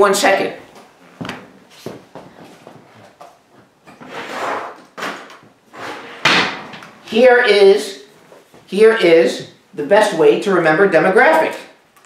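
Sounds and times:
board scraping and sliding: 4.0s - 4.9s.

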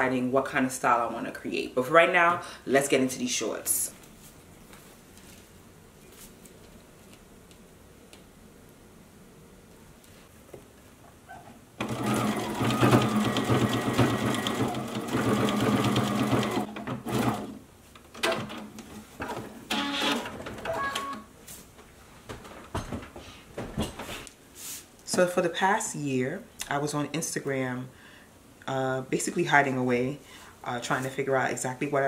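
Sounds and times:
sewing machine stitching: 11.8s - 17.6s.

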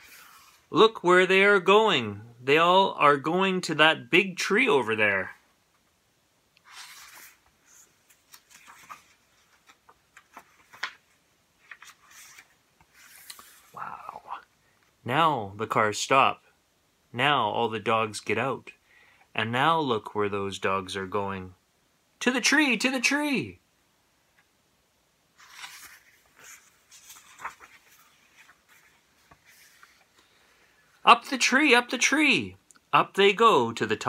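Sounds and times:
paper rustling: 0.0s - 0.8s, 6.6s - 13.8s, 25.4s - 31.0s
man's voice murmuring: 13.8s - 14.5s.

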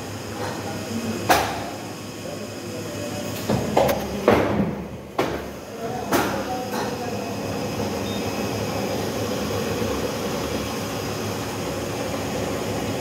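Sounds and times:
paper guillotine machine hum: 0.0s - 13.0s.

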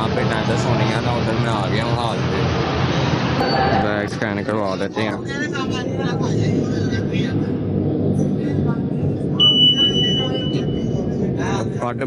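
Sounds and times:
people talking: 0.0s - 2.5s, 3.4s - 7.6s, 8.2s - 12.0s
steady low hum: 0.0s - 12.0s
high electronic beep: 9.4s - 11.0s.

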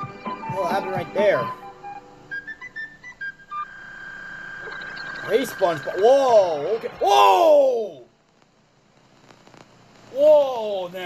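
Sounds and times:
steady high tone: 0.0s - 8.0s
short high electronic beeps: 4.4s - 7.0s.

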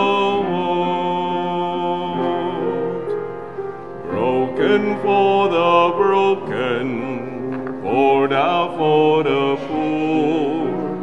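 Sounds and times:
person singing a hymn: 0.0s - 11.0s
piano accompaniment: 0.0s - 11.0s.

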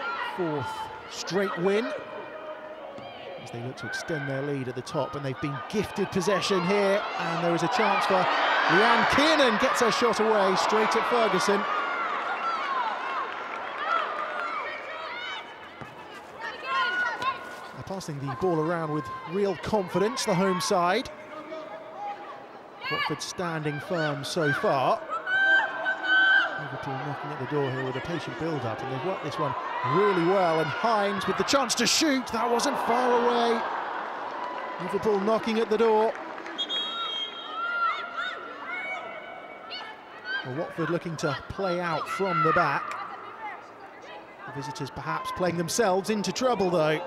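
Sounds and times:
players shouting: 0.0s - 47.0s
women shouting and calling: 13.8s - 17.6s, 22.0s - 33.8s, 37.5s - 44.6s.

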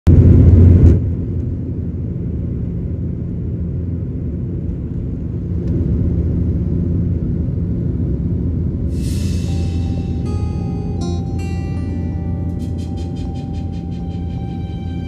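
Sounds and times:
jet engines rumbling in cabin: 0.1s - 15.0s
loud rushing noise: 8.9s - 15.0s.

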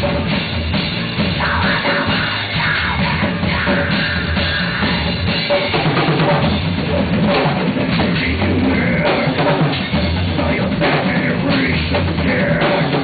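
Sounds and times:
drum kit: 0.0s - 13.0s.

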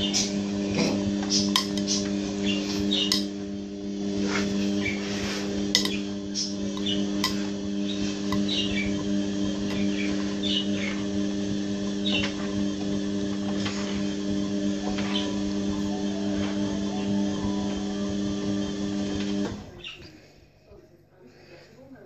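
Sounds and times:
washing machine motor humming: 0.0s - 22.0s.

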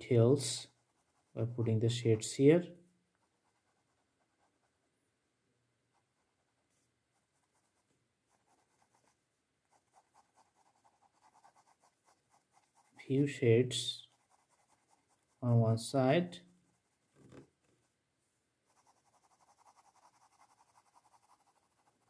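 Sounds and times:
pen scratching on paper: 5.9s - 13.0s, 14.0s - 15.4s, 18.7s - 22.0s.

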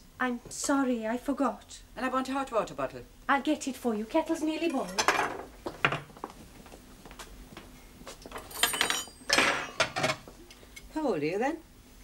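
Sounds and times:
crockery and cutlery clinking: 4.6s - 6.0s, 8.3s - 10.3s.

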